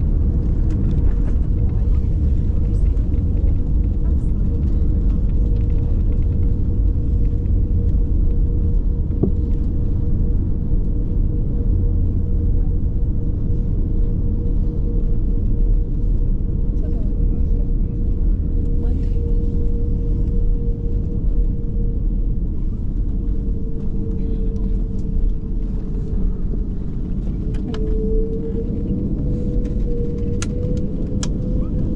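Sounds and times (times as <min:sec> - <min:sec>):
steady hum: 0:00.0 - 0:31.9
wheels and airframe rumbling: 0:00.0 - 0:31.9.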